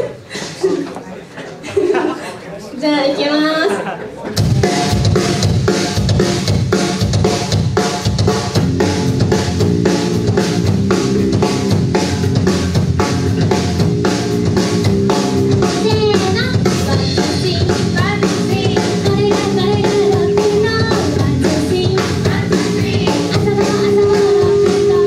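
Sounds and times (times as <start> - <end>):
electric bass: 4.4 - 25.0
rock drum kit beat: 4.4 - 25.0.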